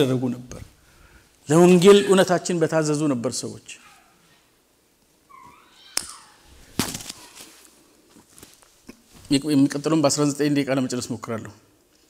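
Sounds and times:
high-pitched cry: 0:01.8 - 0:02.5, 0:05.3 - 0:07.5.

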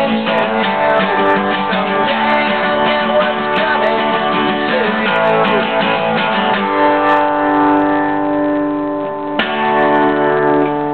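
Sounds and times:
acoustic guitar chord ringing: 0:00.0 - 0:10.9.

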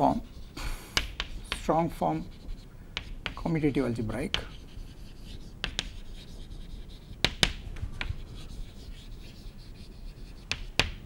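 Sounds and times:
chalk scratching on chalkboard: 0:00.0 - 0:11.0
chalk tapping on board: 0:00.0 - 0:11.0.

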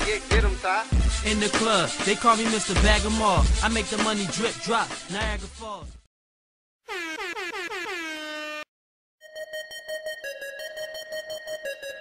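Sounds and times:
air horn blasts: 0:06.9 - 0:08.7.

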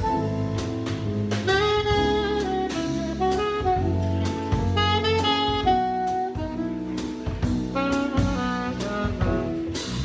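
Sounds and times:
drum kit: 0:00.0 - 0:10.0
electric bass guitar: 0:00.0 - 0:10.0
saxophone melody: 0:00.0 - 0:10.0.

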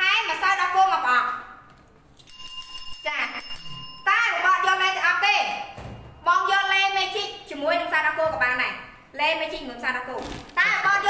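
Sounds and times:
steady ringing tone: 0:02.2 - 0:06.9.

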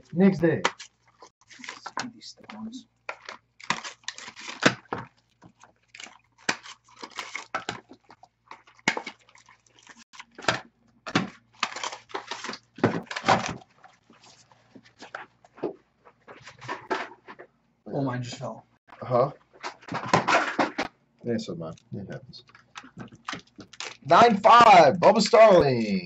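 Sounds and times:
foil wrappers crinkling and tearing: 0:00.6 - 0:15.2, 0:22.4 - 0:24.7.

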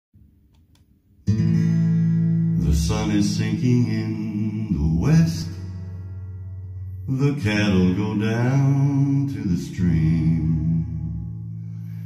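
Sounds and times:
acoustic guitar chord ringing: 0:01.2 - 0:12.0.

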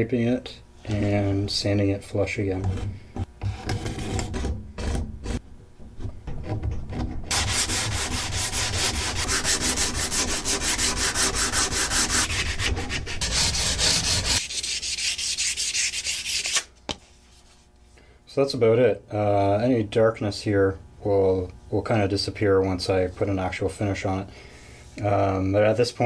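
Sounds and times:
sanding block rubbing wood: 0:07.3 - 0:16.6.

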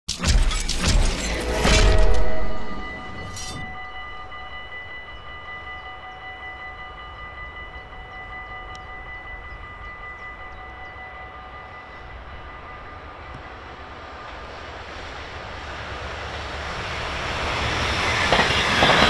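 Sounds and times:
low rumble: 0:00.6 - 0:04.3
level crossing warning bell: 0:02.1 - 0:15.6.

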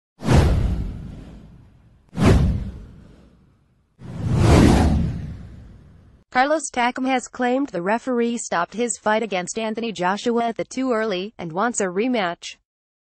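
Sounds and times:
whoosh sound effects: 0:00.2 - 0:03.4, 0:04.0 - 0:06.1.

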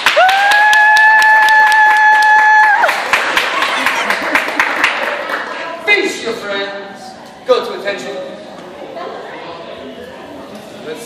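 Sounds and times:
hands clapping: 0:00.0 - 0:05.6.

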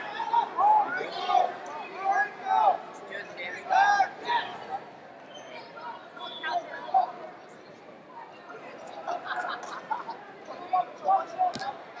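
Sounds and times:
people talking: 0:05.5 - 0:12.0.

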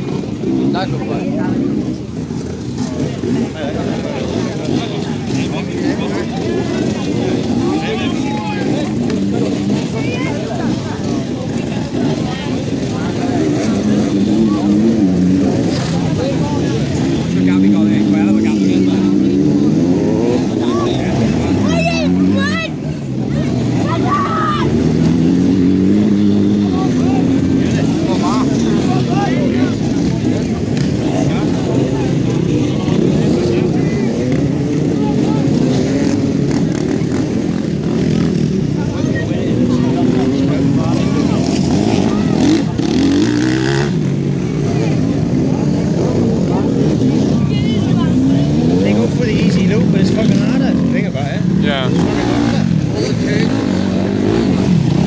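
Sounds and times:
dirt bike engines revving: 0:00.0 - 0:55.0.

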